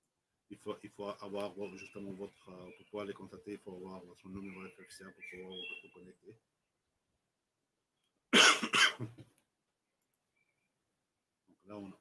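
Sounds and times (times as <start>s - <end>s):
man coughing: 8.3s - 9.2s.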